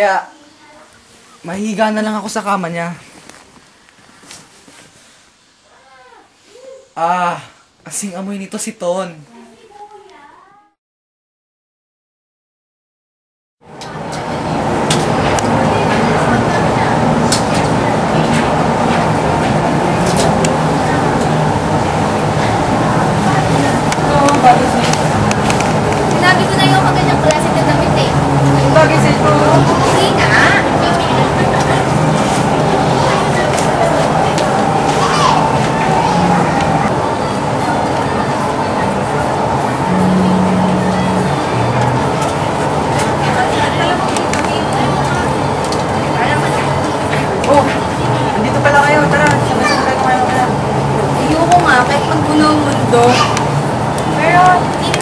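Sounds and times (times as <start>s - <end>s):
indistinct chatter of people: 13.7s - 55.0s
steady background hum: 13.7s - 55.0s.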